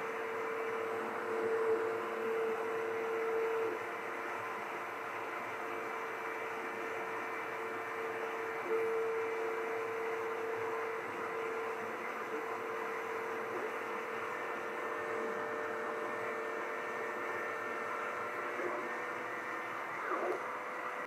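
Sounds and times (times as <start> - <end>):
laser cutter humming and hissing: 0.0 - 21.0
whining tone: 0.0 - 21.0.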